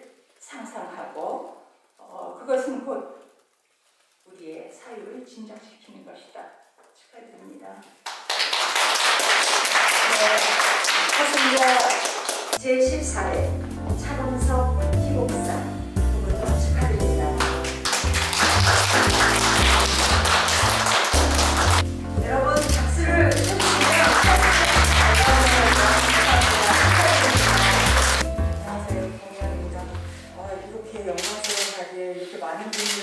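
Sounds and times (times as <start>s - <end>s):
crowd clapping: 8.0s - 12.6s, 17.4s - 21.9s, 22.6s - 28.3s
woman speaking into microphone: 12.6s - 17.5s, 22.2s - 27.8s, 28.6s - 33.0s
background music with bass line: 13.2s - 30.6s.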